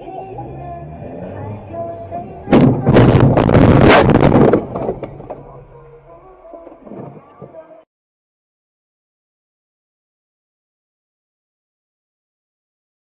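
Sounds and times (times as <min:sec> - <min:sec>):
loud car collision impact: 0:01.4 - 0:05.8
knocks and jolts: 0:02.4 - 0:05.3.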